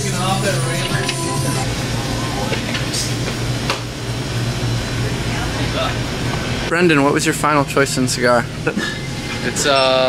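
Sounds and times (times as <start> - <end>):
low hum and hiss of coolers: 0.0 - 10.0.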